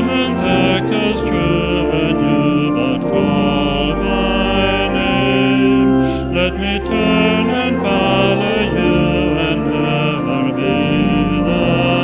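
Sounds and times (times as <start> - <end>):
organ-like chords: 0.0 - 12.0
voices singing a hymn: 0.0 - 12.0.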